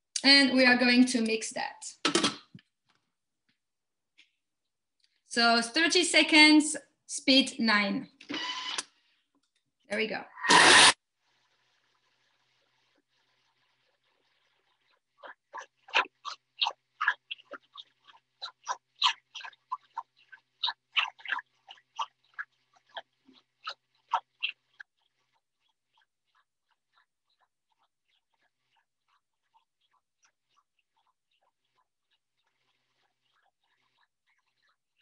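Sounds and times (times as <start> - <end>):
blender motor crunching fruit: 10.5 - 11.0.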